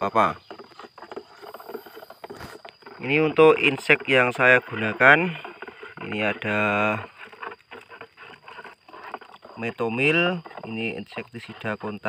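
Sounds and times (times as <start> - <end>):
brush or knock: 0.4 - 12.0.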